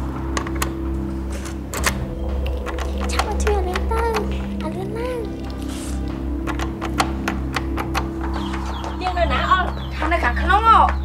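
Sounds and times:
low background music: 0:00.0 - 0:11.0
door lock metallic clicks: 0:01.4 - 0:04.4, 0:06.4 - 0:08.8.

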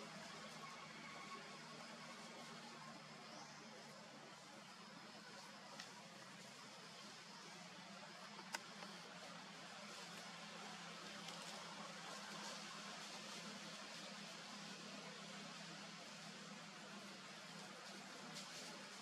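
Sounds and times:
faint background hiss: 0:00.0 - 0:19.0.

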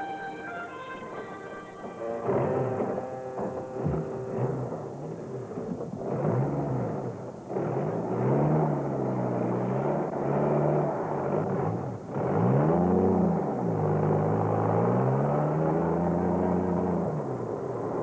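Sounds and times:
vehicle engine revving: 0:00.0 - 0:18.0.

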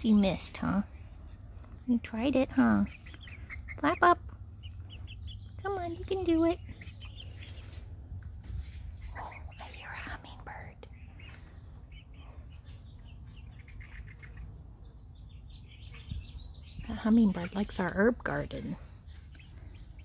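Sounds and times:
low steady rumble: 0:00.0 - 0:20.0.

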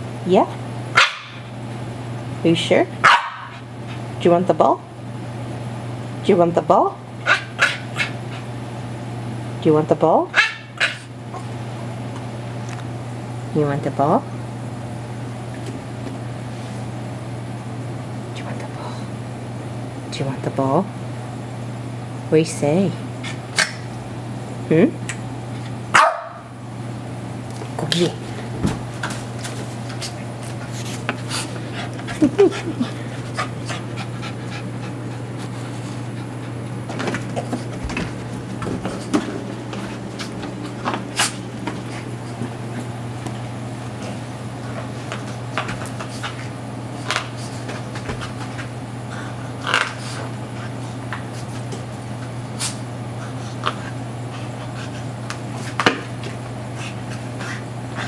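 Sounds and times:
steady low hum: 0:00.0 - 0:58.0
dog panting: 0:29.9 - 0:36.7, 0:53.2 - 0:55.7.

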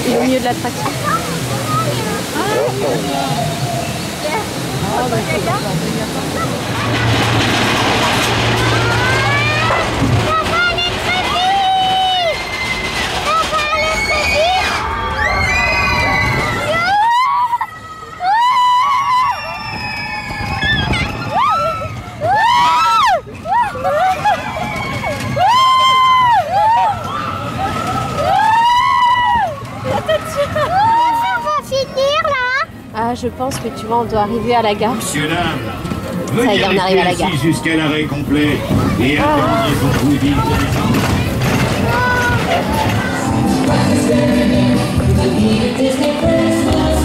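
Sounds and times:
roller coaster rumble: 0:00.0 - 0:47.0
riders shouting and whooping: 0:08.9 - 0:31.6.

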